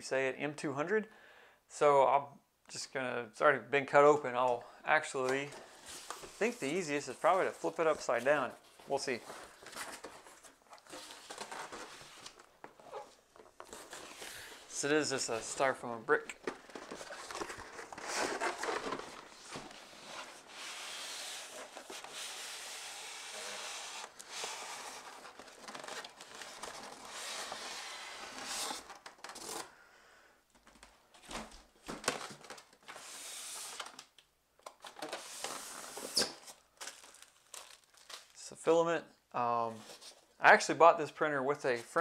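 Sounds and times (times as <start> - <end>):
packaging scuffs and crinkles: 5.4 - 22.7, 34.8 - 38.4
cardboard scraping against foam: 16.8 - 25.2.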